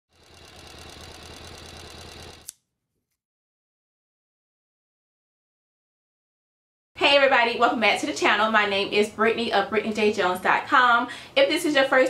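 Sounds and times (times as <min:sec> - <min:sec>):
sewing machine running: 0:00.1 - 0:02.5.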